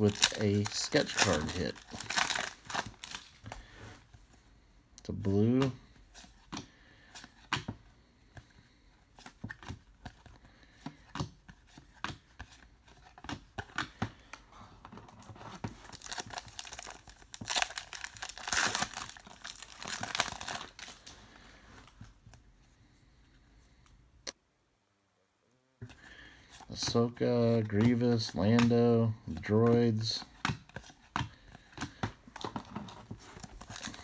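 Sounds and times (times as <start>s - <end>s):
card pack wrapper tearing: 0.0s - 3.4s, 15.8s - 21.1s, 33.4s - 34.0s.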